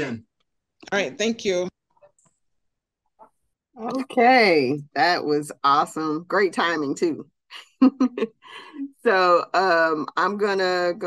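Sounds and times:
person speaking: 0.0s - 0.2s, 3.8s - 7.2s.

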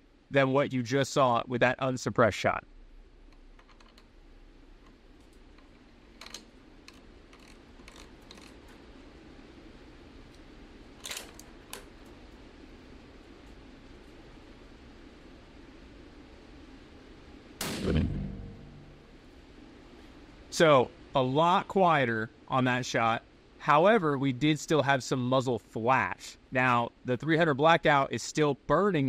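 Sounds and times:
suppressed rifle shot: 17.6s - 19.1s.

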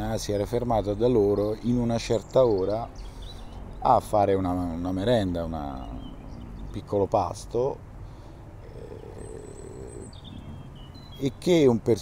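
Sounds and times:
songbirds singing: 0.0s - 12.0s.

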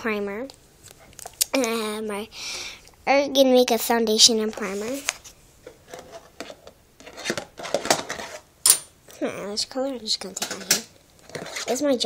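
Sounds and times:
makeup containers clattering: 5.7s - 8.9s, 10.2s - 11.6s.

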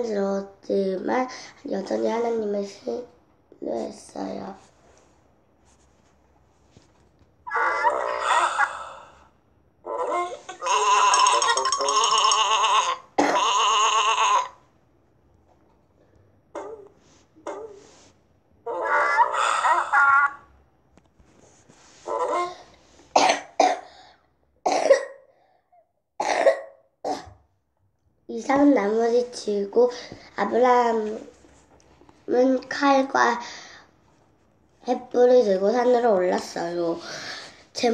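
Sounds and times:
cartoon sheep bleating: 10.0s - 14.6s
girl coughing: 13.2s - 13.6s, 23.1s - 24.0s, 24.7s - 25.3s, 26.2s - 27.4s.

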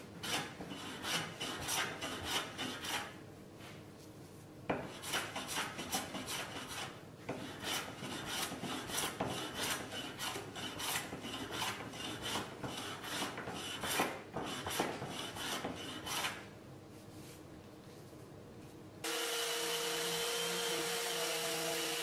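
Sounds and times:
hand plane rasping on wood: 0.2s - 3.1s, 4.9s - 16.4s.

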